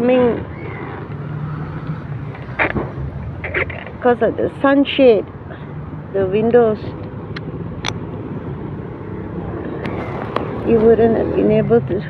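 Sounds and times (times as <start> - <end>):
street traffic: 0.0 - 12.0
vehicle engine humming: 0.0 - 12.0.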